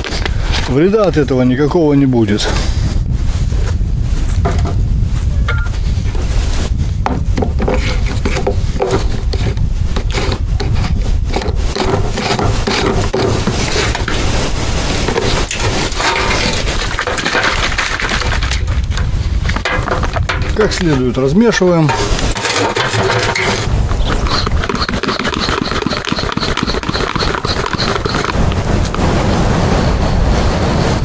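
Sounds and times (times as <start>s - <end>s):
wind rumble on microphone: 0.0s - 31.0s
plastic sprayer being handled: 7.6s - 21.0s, 21.8s - 28.4s.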